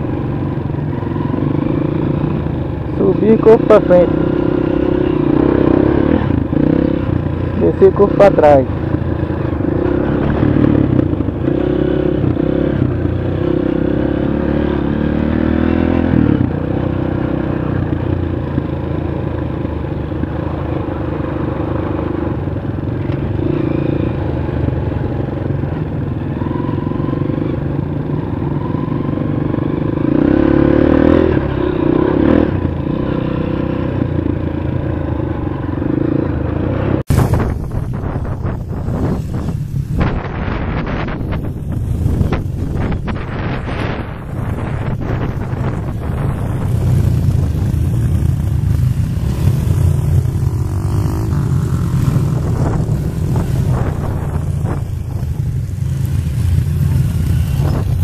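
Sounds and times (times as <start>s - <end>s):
trail bike engine revving: 0.0s - 58.0s
wind buffeting microphone: 37.1s - 58.0s.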